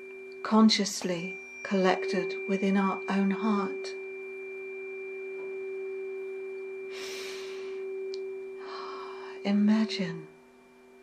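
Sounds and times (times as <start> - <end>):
tuning fork ringing: 0.0 - 11.0.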